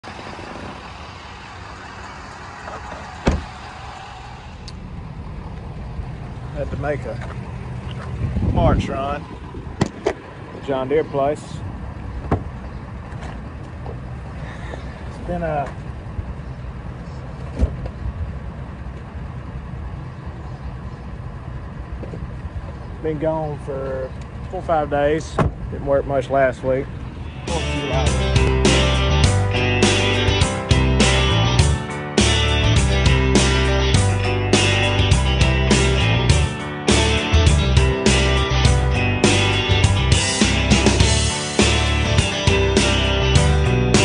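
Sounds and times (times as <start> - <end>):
motor vehicle rumble and hiss: 0.0 - 44.0.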